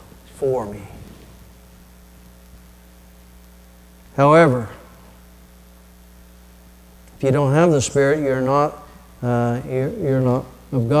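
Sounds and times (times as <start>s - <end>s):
electrical mains hum: 0.0s - 11.0s
faint hiss: 0.0s - 11.0s.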